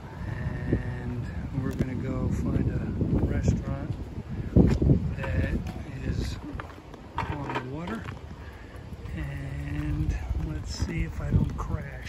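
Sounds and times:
bicycle riding noise: 0.0s - 12.0s
wind rumble: 0.0s - 12.0s.

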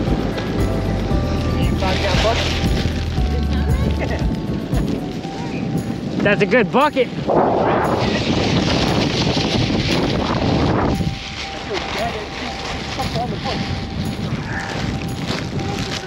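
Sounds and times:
plastic bag rustling: 0.0s - 16.0s
wind: 0.0s - 16.0s.

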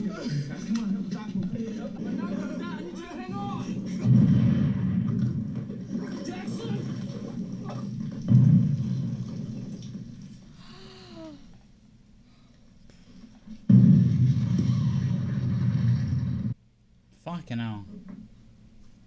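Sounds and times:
heavy explosions: 3.7s - 10.4s, 13.7s - 16.6s.

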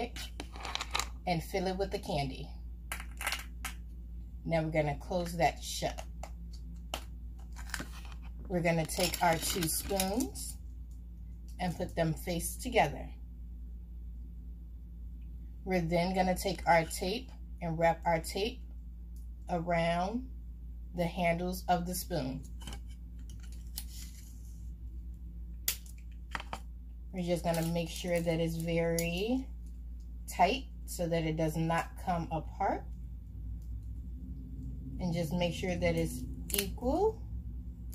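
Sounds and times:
tape rustling: 6.5s - 10.3s.

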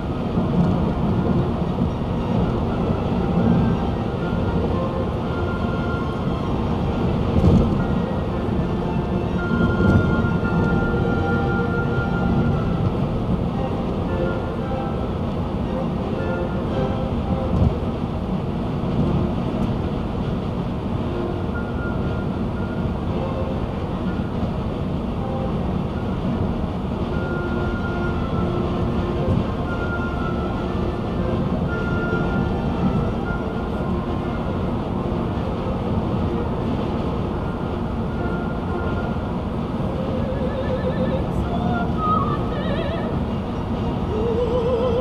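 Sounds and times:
road and tyre rumble in car: 0.0s - 45.0s.

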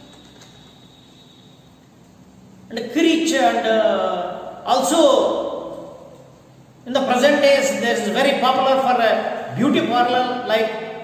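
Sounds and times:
thin high steady tone: 0.0s - 4.9s
faint room hiss: 0.0s - 11.0s.

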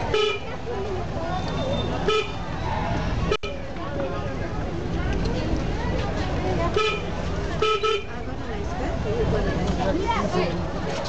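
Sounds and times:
crowd voices on street: 0.0s - 11.0s
car horn toot: 6.8s - 8.1s.

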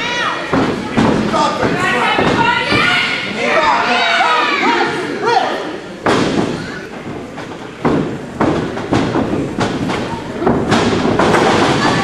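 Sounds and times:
thuds on wrestling ring boards: 6.0s - 12.0s.

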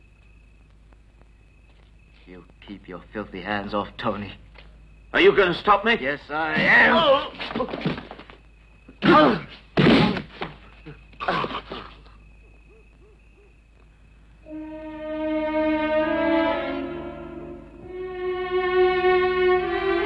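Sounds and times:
sorrowful orchestral strings: 14.4s - 20.0s.

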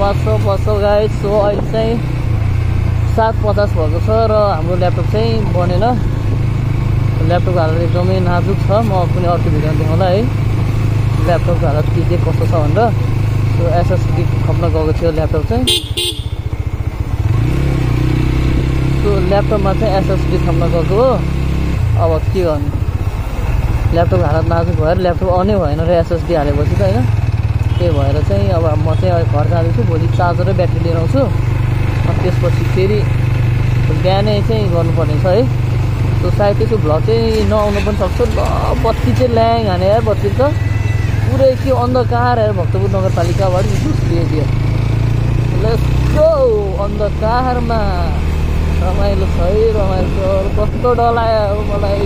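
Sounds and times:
motorcycle engine running: 0.0s - 52.0s
person speaking: 3.0s - 6.2s, 7.1s - 10.4s, 32.0s - 33.2s, 36.2s - 40.6s, 45.5s - 52.0s.

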